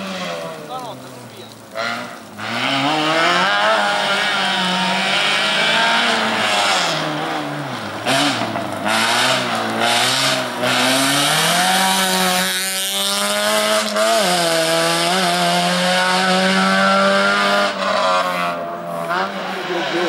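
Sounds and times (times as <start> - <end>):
engine crackles: 0.0 - 20.0
race car engine revving: 0.0 - 20.0.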